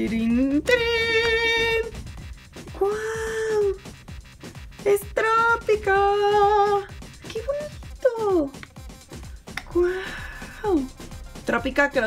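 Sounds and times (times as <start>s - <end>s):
light background music: 0.0s - 12.0s
woman exclaiming: 2.7s - 3.8s.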